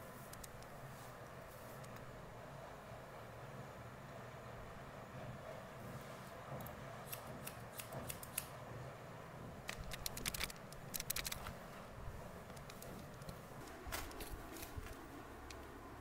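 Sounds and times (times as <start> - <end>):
scissors snipping hair: 7.1 - 8.5.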